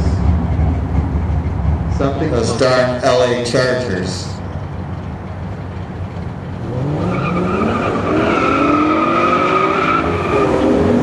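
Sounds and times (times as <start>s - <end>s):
racing car engines rumbling: 0.0s - 11.0s.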